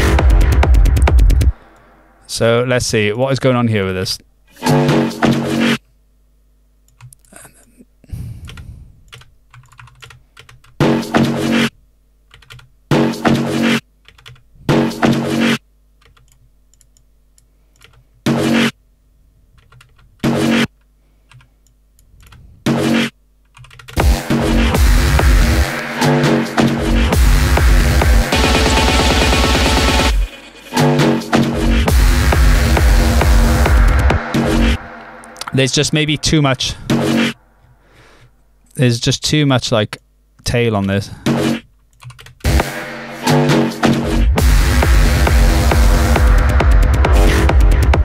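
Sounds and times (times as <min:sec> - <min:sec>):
techno music: 0:00.0 - 0:01.6, 0:04.6 - 0:05.8, 0:24.0 - 0:37.5, 0:42.5 - 0:48.0
computer keyboard and mouse clicks: 0:09.1 - 0:10.7, 0:16.0 - 0:18.0, 0:23.4 - 0:24.0, 0:41.9 - 0:42.4.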